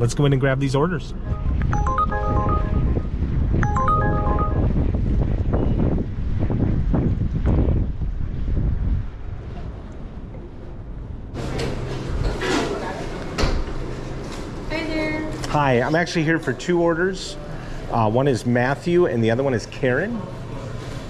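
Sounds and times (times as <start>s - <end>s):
background music: 1.2s - 4.8s
wind buffeting microphone: 2.4s - 11.4s.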